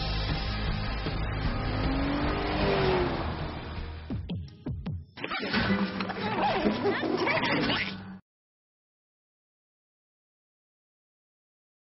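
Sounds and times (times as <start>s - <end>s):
car engine accelerating: 0.0s - 4.2s.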